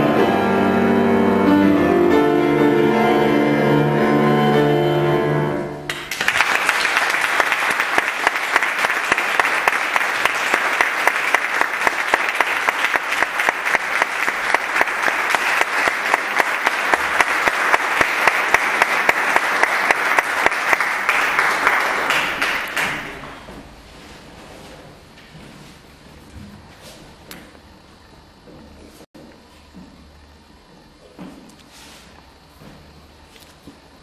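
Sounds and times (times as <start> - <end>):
audience applauding: 5.9 - 23.4.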